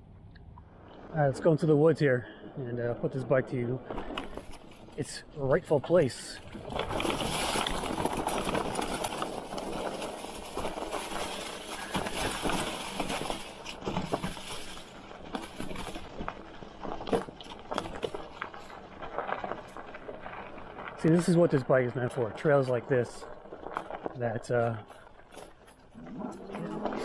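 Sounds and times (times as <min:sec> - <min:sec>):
clicks and knocks over rough ground: 0:02.8 - 0:27.0
bike tyres crunching dry leaves: 0:03.1 - 0:27.0.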